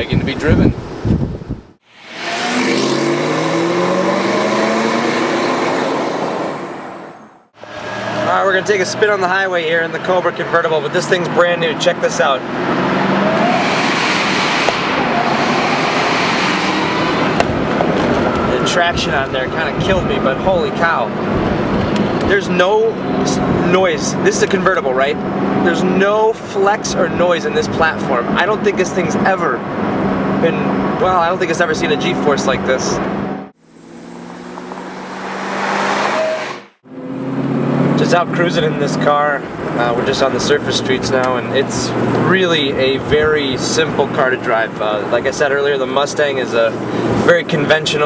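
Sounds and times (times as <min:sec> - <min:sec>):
wind rushing: 0:00.0 - 0:08.0, 0:12.8 - 0:20.4, 0:34.6 - 0:36.8
road and wind noise: 0:00.0 - 0:48.0
car engine accelerating: 0:01.8 - 0:26.0, 0:26.7 - 0:48.0
faint rising whine: 0:33.6 - 0:36.8.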